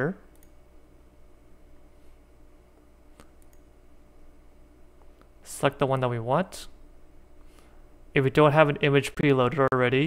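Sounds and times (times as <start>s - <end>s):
computer mouse clicks: 0.3s - 0.6s, 3.1s - 3.7s
person speaking: 5.4s - 6.8s, 8.1s - 10.0s.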